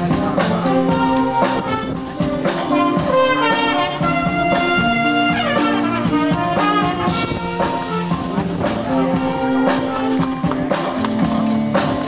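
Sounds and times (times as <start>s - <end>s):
concert band playing: 0.0s - 12.0s
drum kit: 0.0s - 12.0s.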